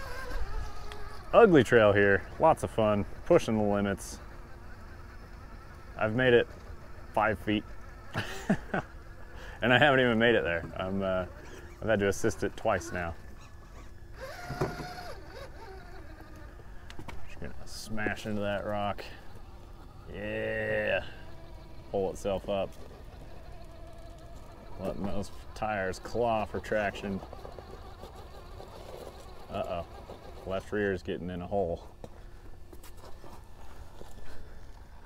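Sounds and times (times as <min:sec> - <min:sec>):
electric motor whining: 0:00.0 - 0:35.0
tires clawing on rock: 0:00.0 - 0:35.0.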